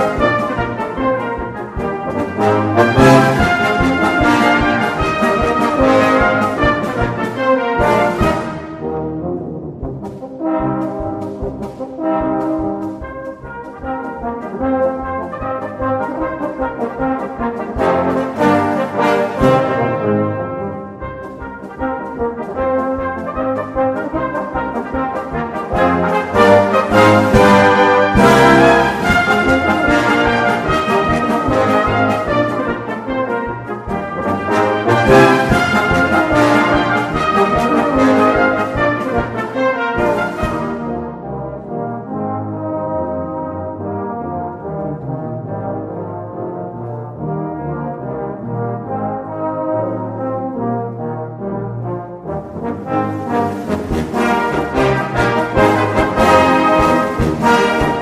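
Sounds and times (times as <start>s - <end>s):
brass band playing a march: 0.0s - 58.0s.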